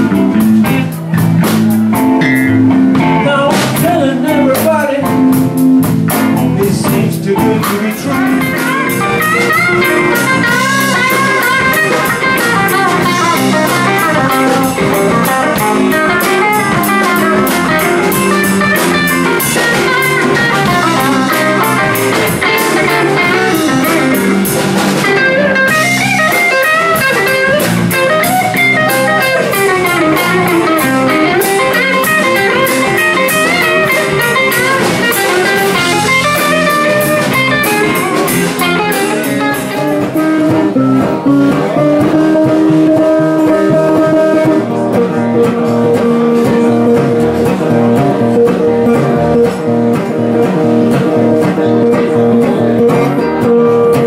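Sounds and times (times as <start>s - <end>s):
electric guitar solo: 0.0s - 6.5s, 8.0s - 54.0s
drums and cymbals: 0.0s - 54.0s
resonator guitar long notes: 0.0s - 54.0s.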